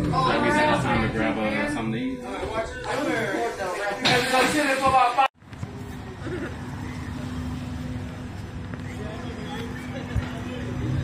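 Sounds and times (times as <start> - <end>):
faint street noise: 0.0 - 11.0.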